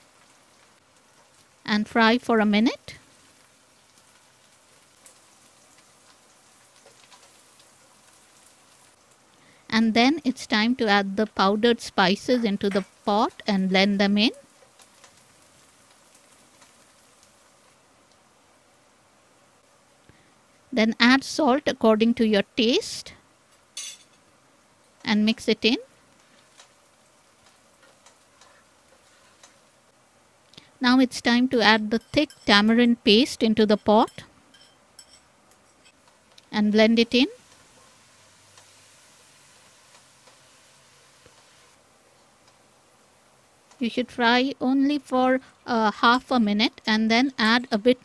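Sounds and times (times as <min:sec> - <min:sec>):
small crackles: 0:00.0 - 0:01.8, 0:02.8 - 0:09.8, 0:12.4 - 0:20.7, 0:23.2 - 0:30.8, 0:34.2 - 0:36.6, 0:37.2 - 0:43.9
leaves sizzling in oil: 0:00.0 - 0:48.0.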